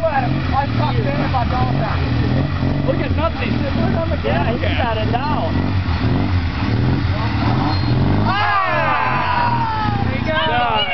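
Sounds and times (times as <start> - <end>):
motorcycle engines at low revs: 0.0 - 10.9
person yelling: 8.3 - 10.9.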